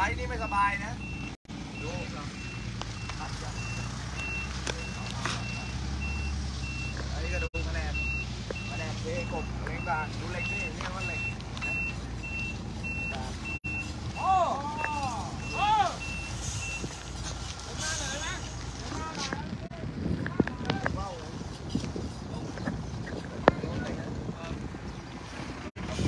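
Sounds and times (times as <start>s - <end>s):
reversing alarm beeping: 0.0s - 16.9s
vehicle engine running: 0.0s - 21.5s.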